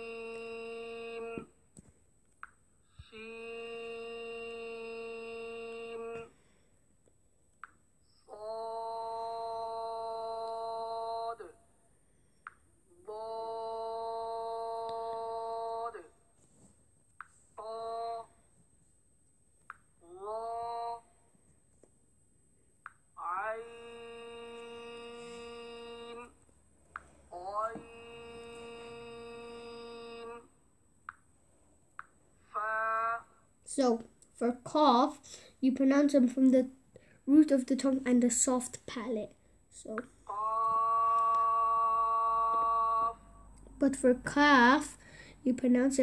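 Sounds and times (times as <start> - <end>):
person reciting letter names: 0.0 - 1.7, 2.9 - 6.6, 8.1 - 11.6, 12.5 - 16.1, 17.5 - 18.5, 20.0 - 21.2, 23.1 - 30.6, 32.1 - 46.0
man holding long vowel note: 3.0 - 6.3, 13.1 - 16.1, 17.6 - 18.4, 20.0 - 21.1, 23.2 - 26.4, 27.4 - 30.4, 40.3 - 43.6.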